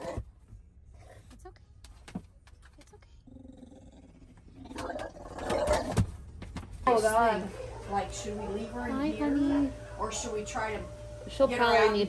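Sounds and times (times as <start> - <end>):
dog growling: 3.2 - 6.0.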